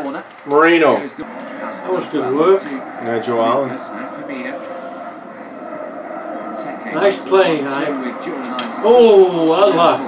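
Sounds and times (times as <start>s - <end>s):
stadium crowd noise on television: 0.0s - 10.0s.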